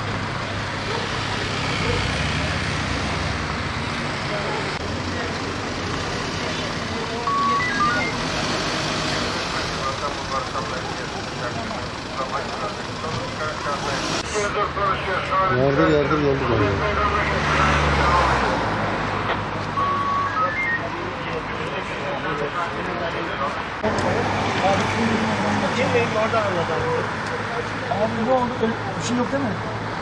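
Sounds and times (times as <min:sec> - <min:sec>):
road traffic hum: 0:00.0 - 0:30.0
indistinct voices: 0:00.7 - 0:18.6
short high electronic beeps: 0:07.2 - 0:08.2, 0:19.8 - 0:20.9.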